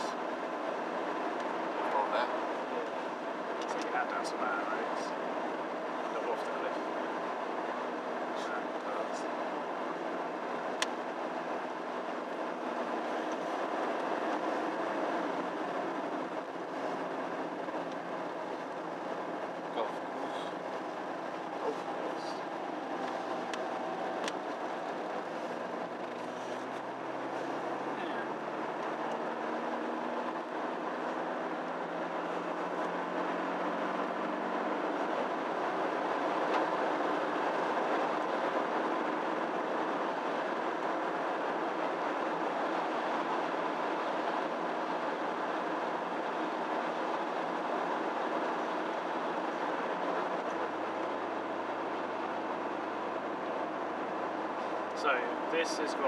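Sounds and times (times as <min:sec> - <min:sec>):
car engine accelerating: 0:00.0 - 0:56.0
tyres rumbling on road: 0:00.0 - 0:56.0.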